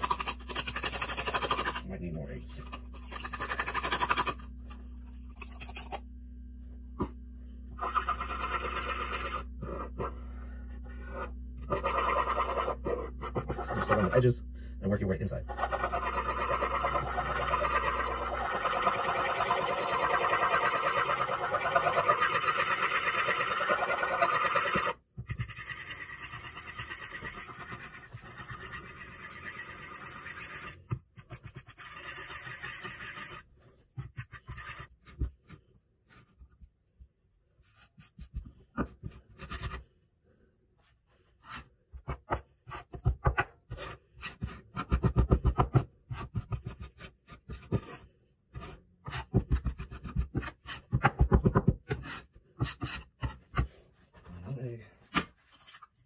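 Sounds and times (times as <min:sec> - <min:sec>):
fork beating eggs: 0:00.0 - 0:01.9, 0:02.5 - 0:04.4, 0:15.5 - 0:33.4
bench scraper scraping dough: 0:10.9 - 0:14.2, 0:15.5 - 0:35.6.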